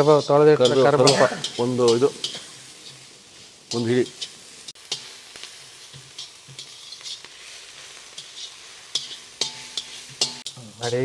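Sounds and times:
spatula scraping a wok: 0.0s - 11.0s
vegetables sizzling in oil: 0.0s - 11.0s.

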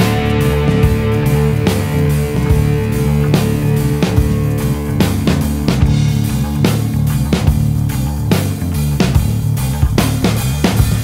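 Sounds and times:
stoner rock band instrumental: 0.0s - 11.0s.

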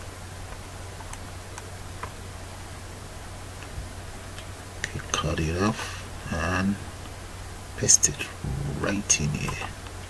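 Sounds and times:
steady low hum: 8.4s - 9.7s.

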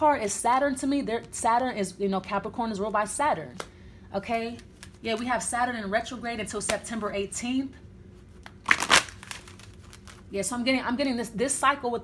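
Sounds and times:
cards rustling: 8.3s - 10.3s.

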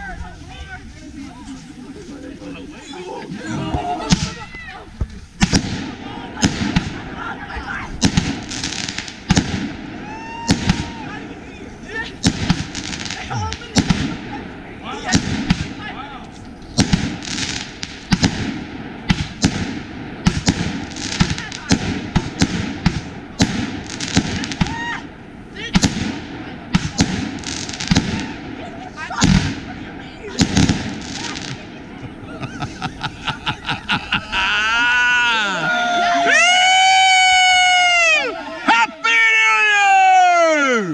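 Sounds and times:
fireworks bangs and crackles: 0.0s - 34.2s.

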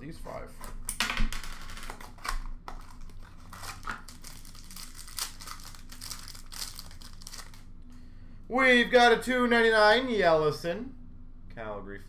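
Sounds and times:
foil wrapper crinkling: 1.9s - 7.7s.

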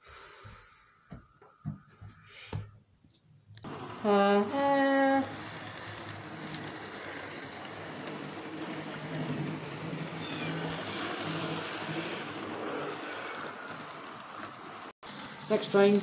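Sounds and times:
model train motor whirring: 3.7s - 14.2s
train wheels rumbling on rails: 4.3s - 14.9s.

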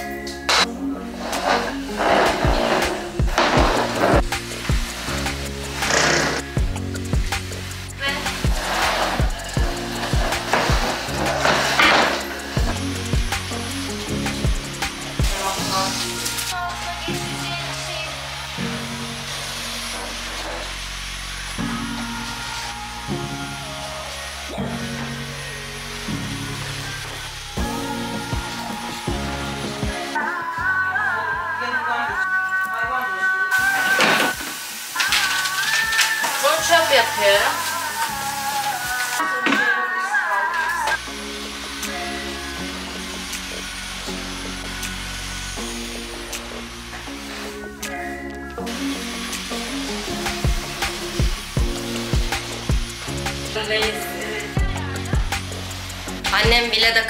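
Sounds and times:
song with stepping bass line: 0.0s - 17.4s, 26.1s - 32.2s, 40.9s - 57.0s
sung vocals: 0.0s - 57.0s.

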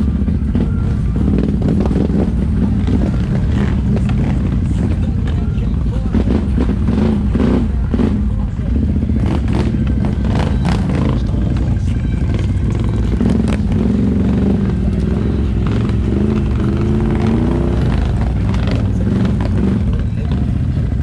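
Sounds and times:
atv engine running: 0.0s - 21.0s
knocks and clatter over rough ground: 0.0s - 21.0s.

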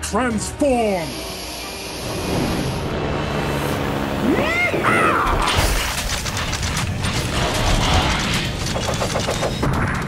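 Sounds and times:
mechanical whirring and clicking: 4.6s - 10.0s.

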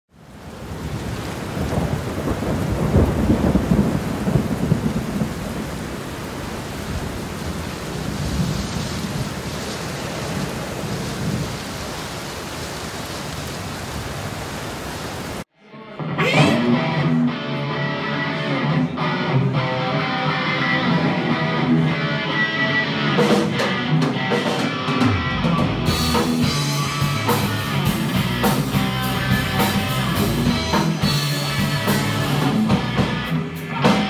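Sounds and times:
rain hiss: 0.1s - 15.5s, 25.8s - 33.8s
rolling thunder: 0.4s - 12.6s.

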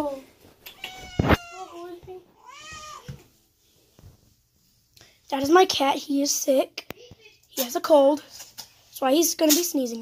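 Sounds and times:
cat meowing: 0.7s - 1.7s.

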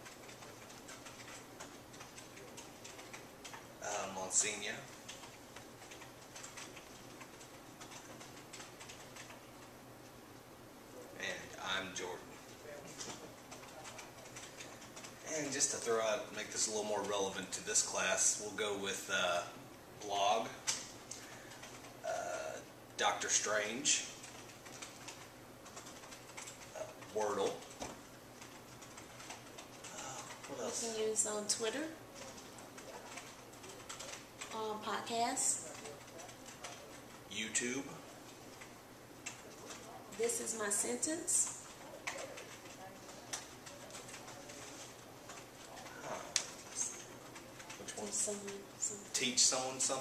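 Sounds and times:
keyboard typing: 0.0s - 9.8s, 12.0s - 17.8s, 20.0s - 22.6s, 23.2s - 50.0s
low room hum: 0.0s - 50.0s.

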